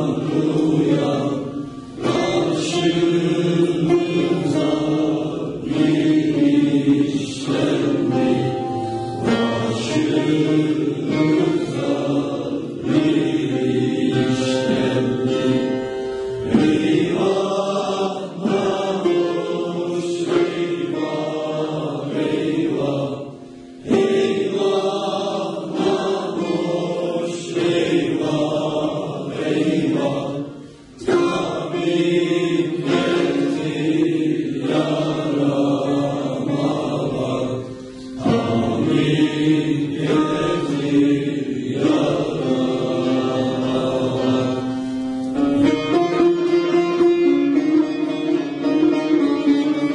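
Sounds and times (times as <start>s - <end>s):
youth choir singing folk song: 0.0s - 49.9s.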